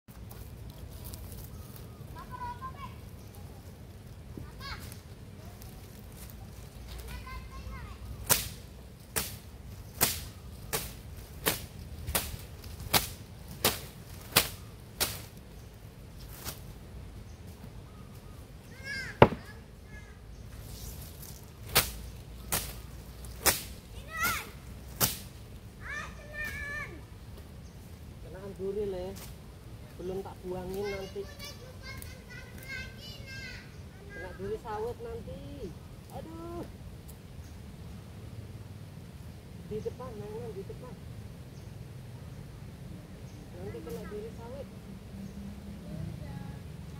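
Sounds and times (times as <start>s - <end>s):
children calling and talking: 0.8s - 8.3s, 17.8s - 20.5s, 23.8s - 24.8s, 25.6s - 27.3s, 29.8s - 36.8s
dry palm fronds snapping: 8.2s - 15.5s, 16.2s - 16.7s, 20.7s - 25.6s.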